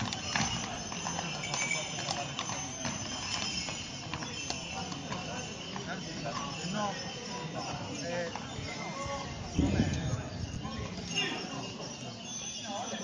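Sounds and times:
hooves clip-clopping on pavement: 0:00.0 - 0:13.0
people talking: 0:00.0 - 0:13.0.

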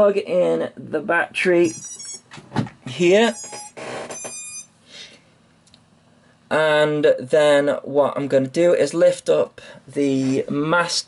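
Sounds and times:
electronic startup beep tones: 0:01.6 - 0:02.3, 0:03.3 - 0:04.7.

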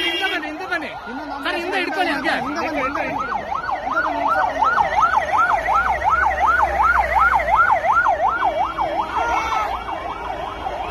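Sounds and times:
ambulance siren yelping: 0:00.0 - 0:10.9.

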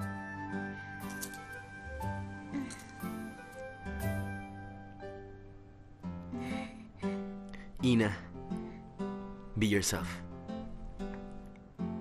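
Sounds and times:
man speaking: 0:07.8 - 0:08.3, 0:09.5 - 0:10.2.

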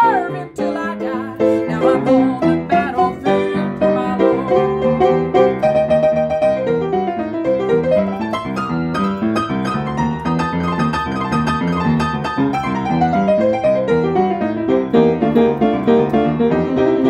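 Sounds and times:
piano playing chords: 0:00.0 - 0:17.0.

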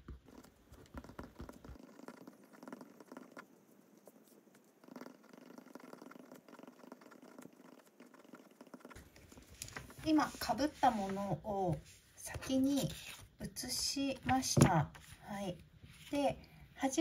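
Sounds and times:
pen scratching on paper: 0:00.2 - 0:03.4.

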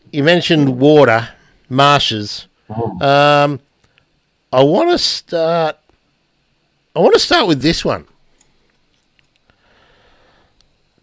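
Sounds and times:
faint breath into microphone: 0:09.5 - 0:10.6.

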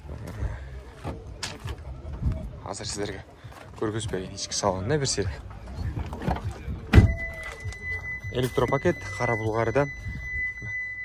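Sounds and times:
faint background voices: 0:00.0 - 0:10.7.

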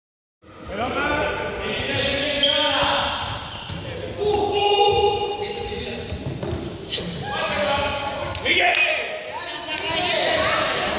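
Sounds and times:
rubber balls bouncing on hall floor: 0:02.8 - 0:07.1
young people calling out: 0:06.9 - 0:10.9.

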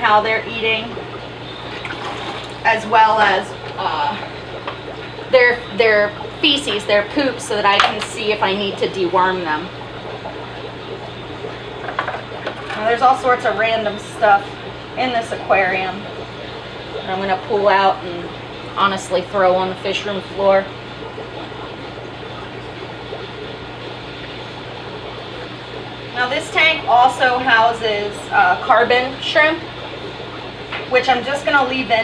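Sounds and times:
bubbling water from air pumps: 0:00.0 - 0:32.0
steady low hum: 0:00.0 - 0:32.0.

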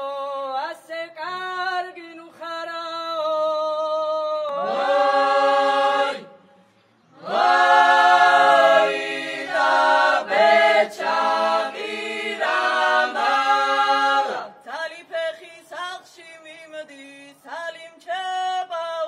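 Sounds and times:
unaccompanied group singing: 0:03.4 - 0:06.4, 0:07.1 - 0:17.2.

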